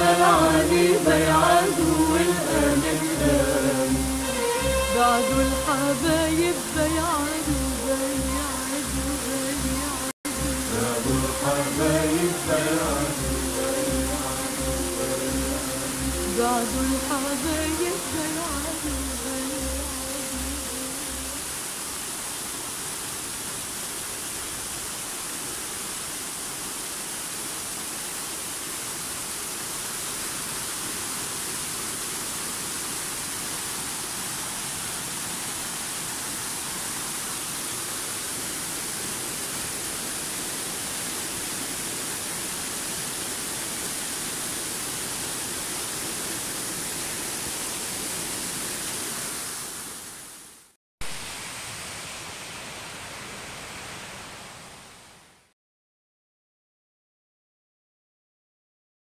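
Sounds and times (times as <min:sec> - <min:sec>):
water rushing over weir: 0:00.0 - 0:50.4.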